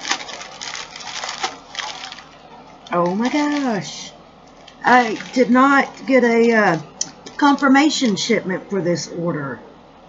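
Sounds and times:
plastic mailer crinkling and rustling: 0.0s - 8.2s.

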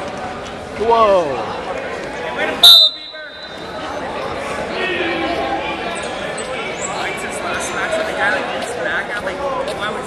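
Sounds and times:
referee's whistle blast: 2.6s - 3.6s.

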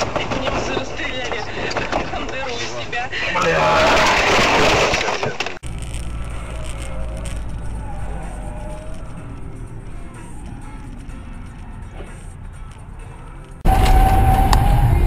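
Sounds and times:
car running noise: 4.0s - 15.0s
voices in a car: 6.5s - 12.3s.

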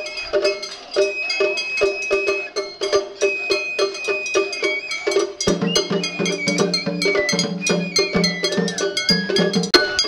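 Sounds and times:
bamboo flutes playing melody: 0.0s - 10.0s
taiko drum beats: 0.0s - 10.0s.

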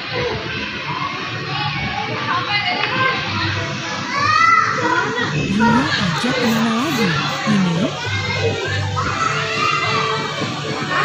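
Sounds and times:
children's voices and play: 3.9s - 11.0s
child's high voice: 5.4s - 8.1s
background music: 5.4s - 8.2s.

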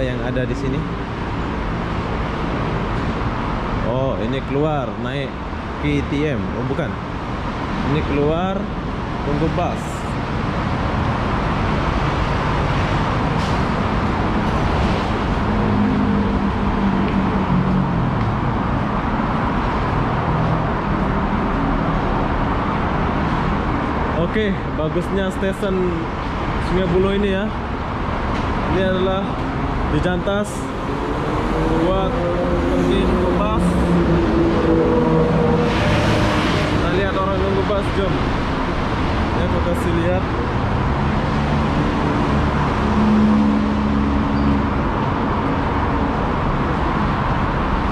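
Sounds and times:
heavy vehicle engine hum: 0.0s - 47.9s
highway traffic roar: 0.0s - 47.9s.

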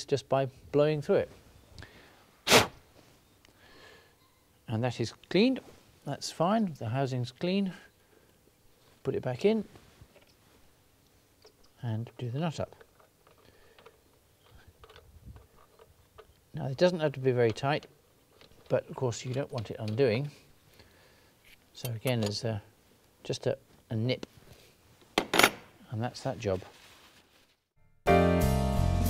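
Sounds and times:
faint breath: 1.8s - 2.4s, 3.5s - 4.3s, 13.4s - 14.8s, 20.3s - 21.6s
breath puff through tube: 2.4s - 2.8s
small clicks and rustles of hands: 10.0s - 16.5s.

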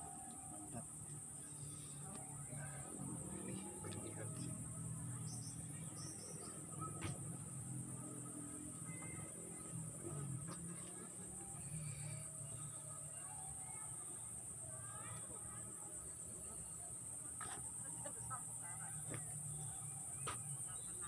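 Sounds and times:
faint distant voices: 0.0s - 21.0s
high-pitched insect drone: 7.3s - 16.6s.

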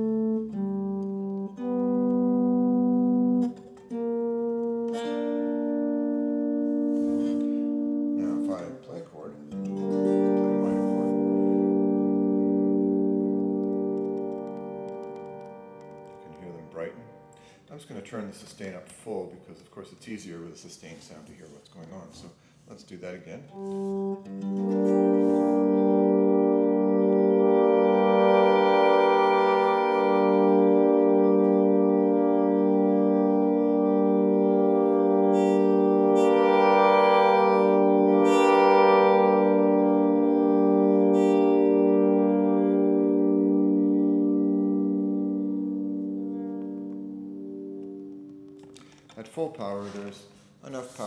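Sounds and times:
sustained acoustic guitar chord: 9.7s - 12.8s.

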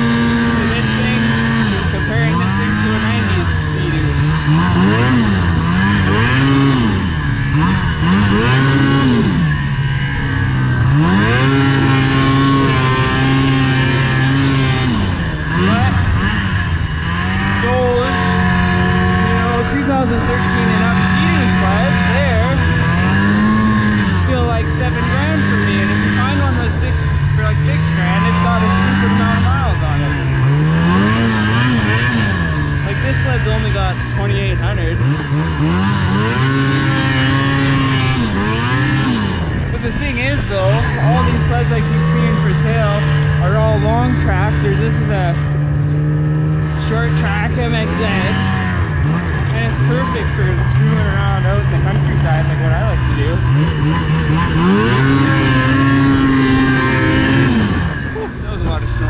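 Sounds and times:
snowmobile engine revving: 0.0s - 59.0s
snowmobile track noise: 0.0s - 59.0s.

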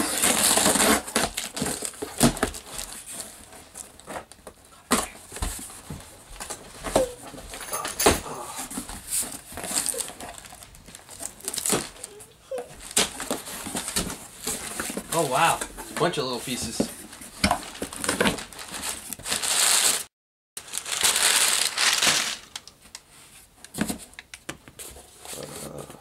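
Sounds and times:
packing tape ripping: 0.0s - 4.4s, 9.1s - 12.2s, 12.8s - 14.9s, 17.6s - 22.8s
packing paper handled: 0.0s - 7.2s, 8.7s - 23.9s
cardboard flaps rustling: 8.6s - 20.1s.

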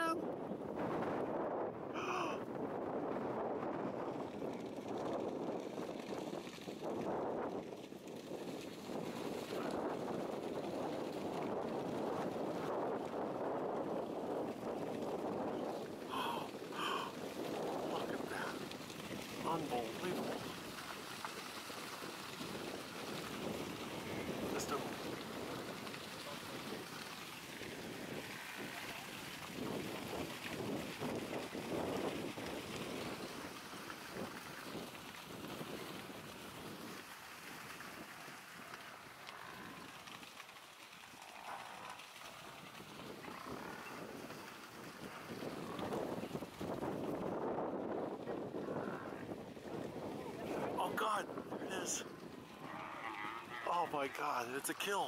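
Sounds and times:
wind on microphone: 0.0s - 40.2s, 41.2s - 53.7s
rush of many hooves: 2.5s - 55.0s.

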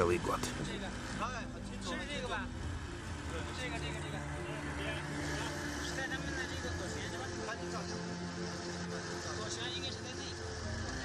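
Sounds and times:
men speaking: 0.0s - 10.5s
boat engine drone: 0.0s - 11.0s.

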